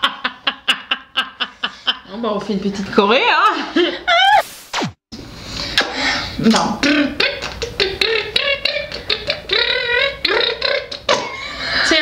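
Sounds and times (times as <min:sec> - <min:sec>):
woman making mouth noises: 0:06.4 - 0:11.3.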